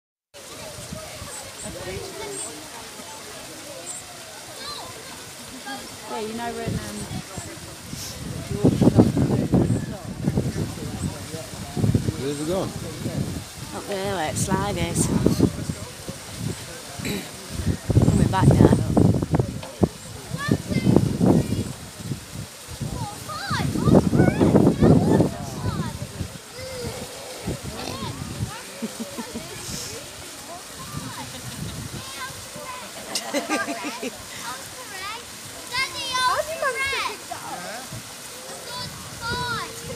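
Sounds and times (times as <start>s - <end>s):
faint voices: 0.4s - 39.9s
indistinct chatter: 0.4s - 39.9s
steady outdoor hiss: 0.4s - 39.9s
waterfall and stream running: 0.4s - 39.9s.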